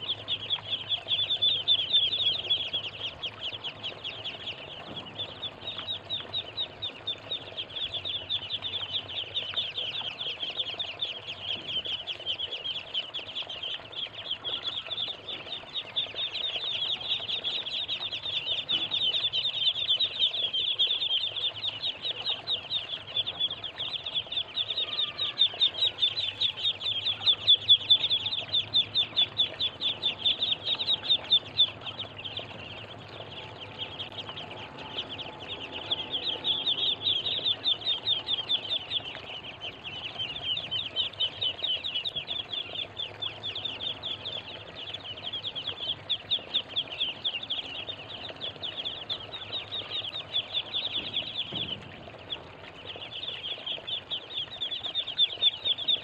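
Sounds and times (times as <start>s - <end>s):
ducklings peeping: 0.0s - 56.0s.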